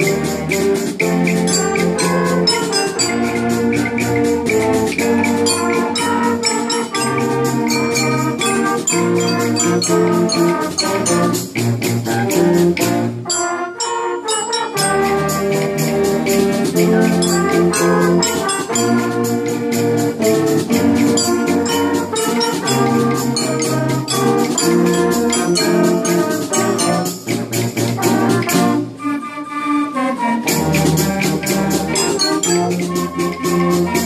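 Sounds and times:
steady percussion beat: 0.0s - 29.0s, 30.4s - 34.0s
concert band playing: 0.0s - 29.2s, 30.0s - 34.0s
trumpets and trombones holding chords: 0.0s - 34.0s.

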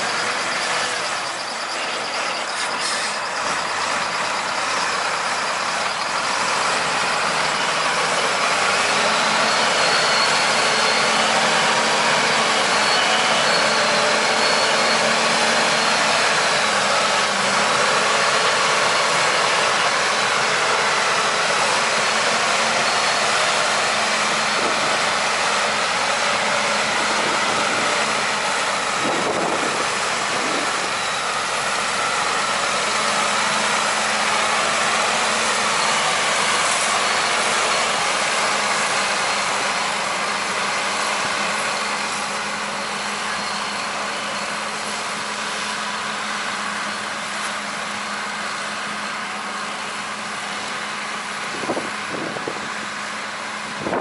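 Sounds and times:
heavy diesel engines running: 0.0s - 54.0s.

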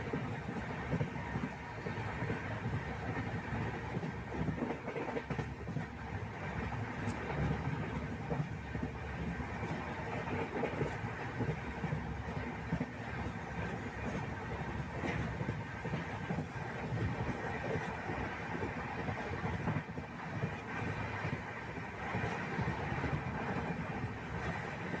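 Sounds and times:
train wheels rumbling on track: 0.0s - 25.0s.

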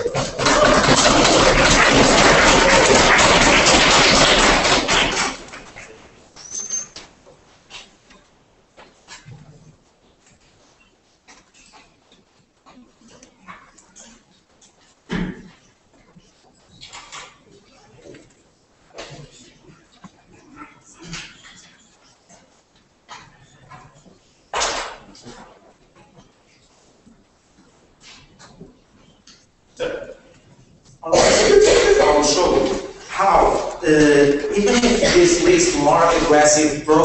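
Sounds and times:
audience applause: 0.0s - 5.9s, 31.1s - 37.0s
faint rustling: 5.7s - 31.0s
brief high squeak: 6.4s - 7.0s
faint murmurs: 9.0s - 24.5s.

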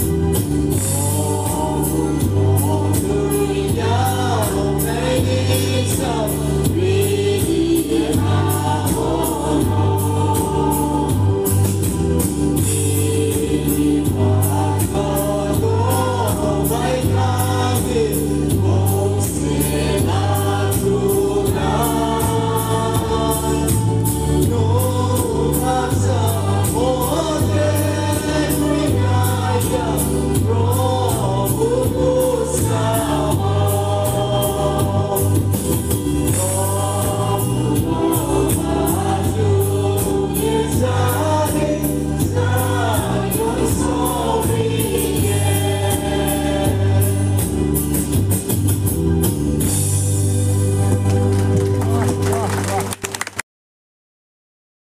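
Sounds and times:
mixed choir singing gospel: 0.0s - 50.9s
instrumental accompaniment with beat: 0.0s - 53.4s.

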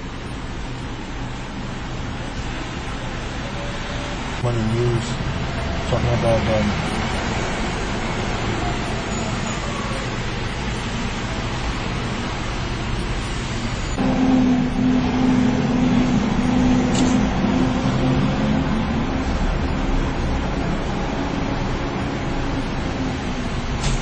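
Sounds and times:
car engine and road rumble: 0.0s - 24.0s
loud steady hum: 10.3s - 24.0s.

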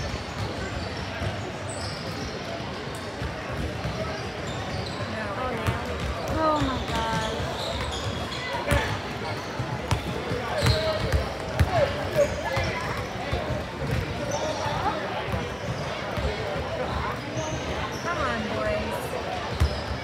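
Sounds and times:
basketballs bouncing on hardwood: 12.5s - 14.3s.

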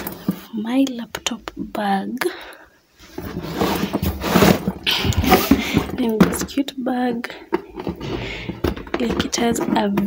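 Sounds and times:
bags rustling and bumping: 0.0s - 0.5s, 3.0s - 6.6s, 7.5s - 10.0s.

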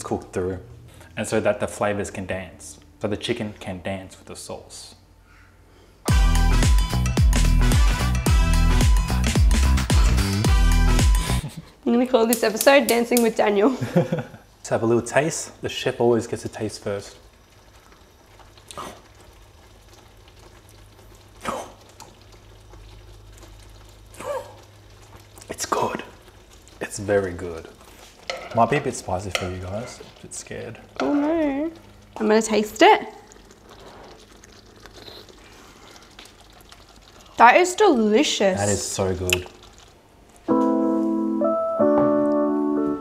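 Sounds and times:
low steady hum: 0.0s - 6.0s
sauce sizzling in pan: 15.3s - 40.3s
slurp from spoon: 33.5s - 36.5s.

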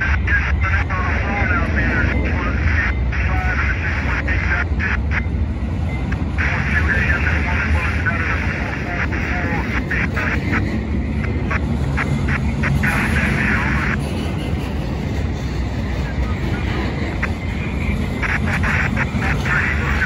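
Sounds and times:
high-pitched rail noise: 0.0s - 20.0s
steel wheels rumbling on rail: 0.0s - 20.0s.

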